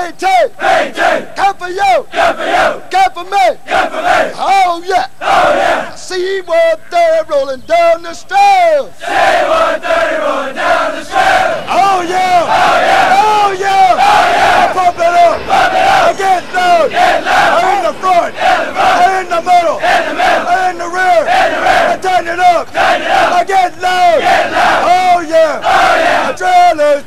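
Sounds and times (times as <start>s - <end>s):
men chanting in unison: 0.5s - 1.4s, 3.6s - 6.0s, 8.9s - 26.4s.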